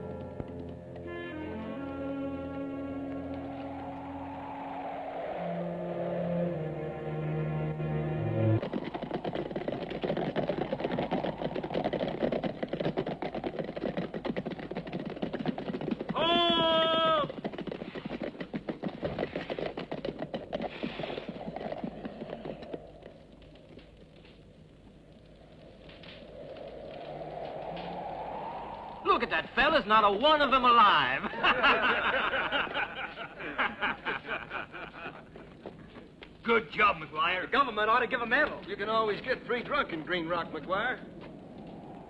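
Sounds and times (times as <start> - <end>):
film music: 0.0 - 9.1
horses galloping hoofbeats: 8.2 - 27.9, 29.0 - 42.0.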